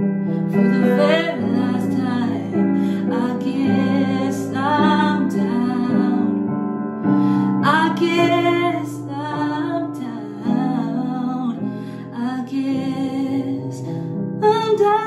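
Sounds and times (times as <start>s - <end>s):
piano backing track: 0.0s - 15.0s
woman singing a ballad: 0.3s - 15.0s.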